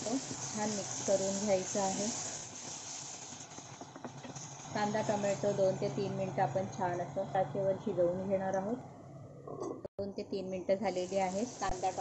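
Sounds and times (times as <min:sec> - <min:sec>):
onion and tomato sizzling in oil: 0:00.0 - 0:07.8, 0:10.8 - 0:12.0.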